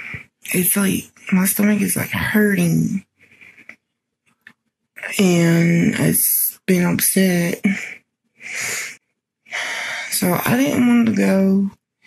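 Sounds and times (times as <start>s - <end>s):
woman speaking: 0.0s - 3.0s, 5.0s - 11.7s
woman breathing into microphone: 8.4s - 10.1s.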